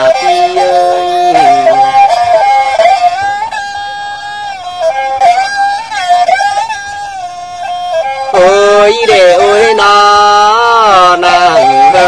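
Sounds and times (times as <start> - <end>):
person singing verses: 0.0 - 2.0, 8.3 - 12.0
wind instrument melody: 0.0 - 12.0.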